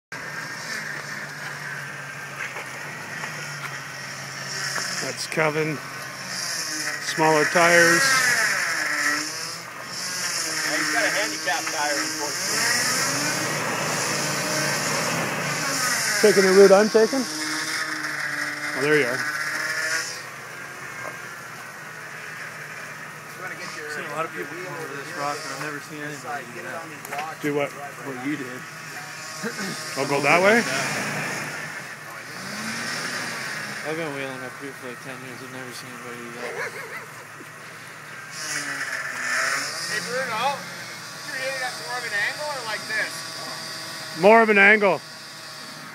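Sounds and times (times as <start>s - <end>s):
engine revving unevenly: 0.1s - 45.9s.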